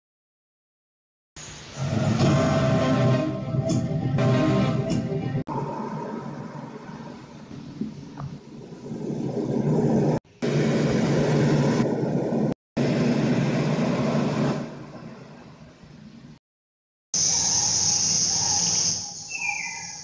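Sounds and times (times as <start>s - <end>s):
low steady rumbling: 1.8s - 16.4s.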